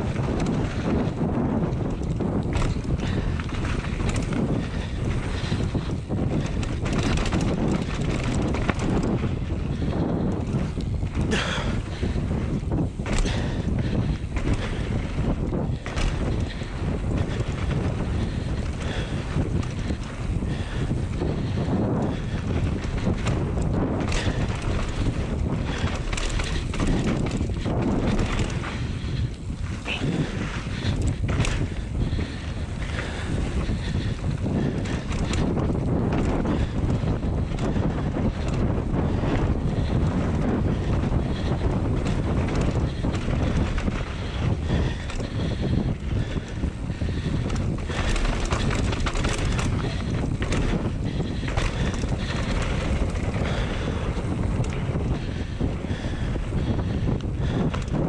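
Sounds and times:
bike knocking and rattling: 0.0s - 58.0s
tyres rumbling on dirt trail: 0.0s - 58.0s
wind buffeting microphone: 0.0s - 58.0s.

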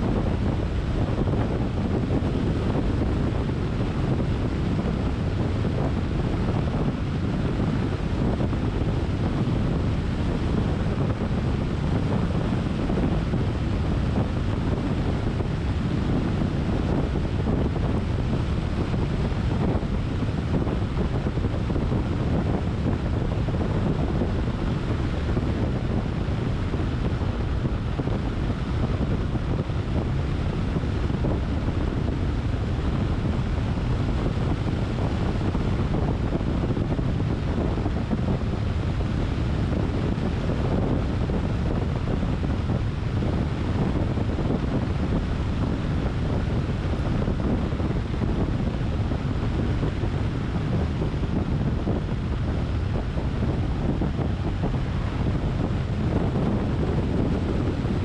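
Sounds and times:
car road noise on asphalt: 0.0s - 58.0s
wind on microphone: 0.0s - 58.0s.

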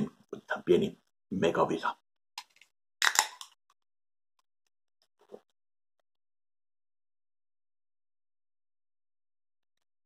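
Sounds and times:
drink can opening pop and fizz: 2.4s - 3.6s.

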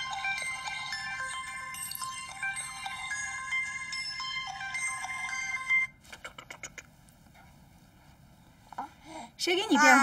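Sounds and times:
mobile phone ringtone melody: 0.0s - 6.0s.

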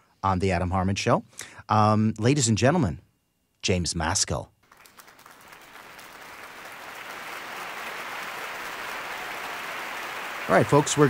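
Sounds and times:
recorded applause: 4.6s - 11.0s.

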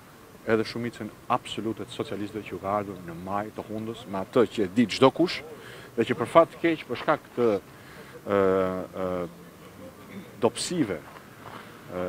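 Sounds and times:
man speaking: 0.4s - 11.1s.

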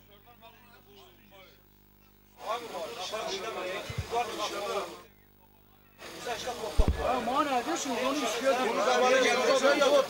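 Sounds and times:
people talking: 2.4s - 10.0s.

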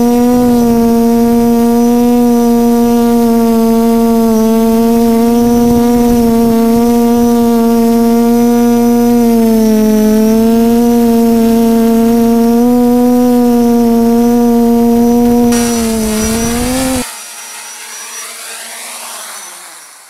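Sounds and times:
drone propellers whining: 0.0s - 20.0s
quiet whir: 0.0s - 20.0s.

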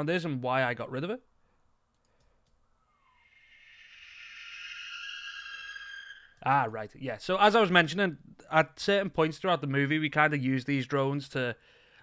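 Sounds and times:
high ringing drone tones: 3.2s - 6.4s.

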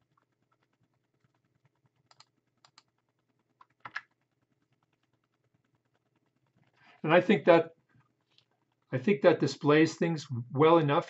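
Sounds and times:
keyboard and mouse clicks: 2.0s - 2.9s, 3.6s - 4.2s
faint low hum: 6.0s - 7.7s, 8.9s - 11.0s.

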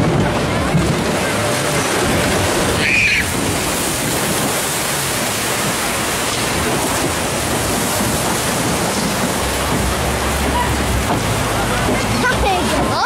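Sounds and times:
water rushing in channel: 0.0s - 13.0s.

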